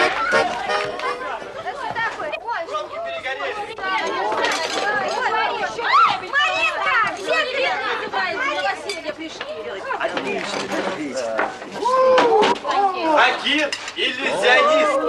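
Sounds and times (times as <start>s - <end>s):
people talking over one another: 0.0s - 15.0s
glasses and cutlery clinking: 13.5s - 14.1s.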